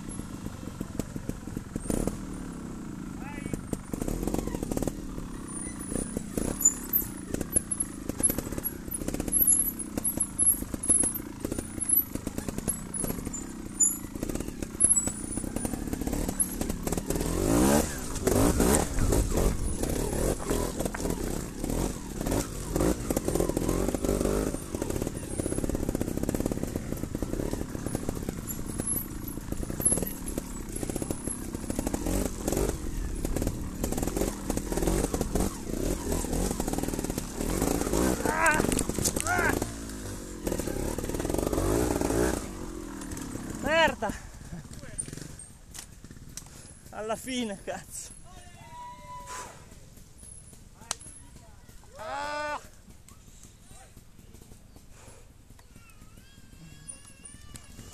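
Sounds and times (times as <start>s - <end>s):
motorcycle engine revving: 0.0s - 48.4s, 49.3s - 57.9s
bike knocking and clattering: 0.0s - 57.9s.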